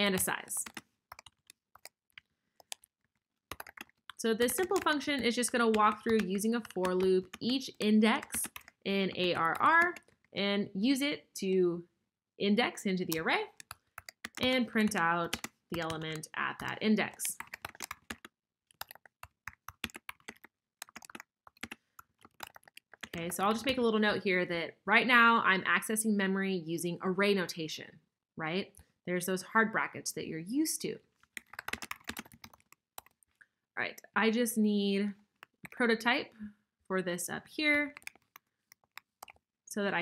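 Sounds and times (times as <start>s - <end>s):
computer keyboard keystrokes: 0.1s - 7.5s, 8.2s - 10.2s, 13.1s - 23.8s, 31.4s - 33.2s, 37.9s - 39.4s.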